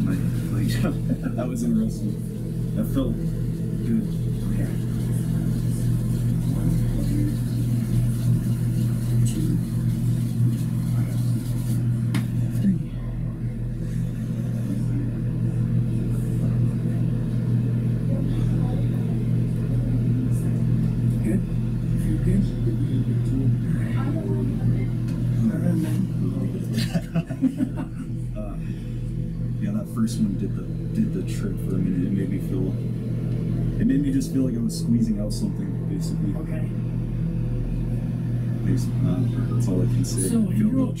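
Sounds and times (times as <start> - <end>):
loud low hum: 0.0 - 41.0
quiet indistinct voices: 10.7 - 27.2.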